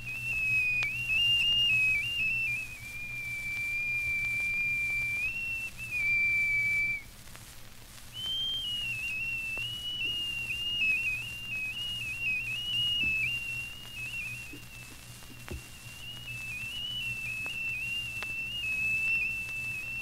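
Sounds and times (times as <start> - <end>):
high whistle-like wind instrument: 0.0 - 7.0, 8.2 - 20.0
record clicks and hum: 0.0 - 20.0.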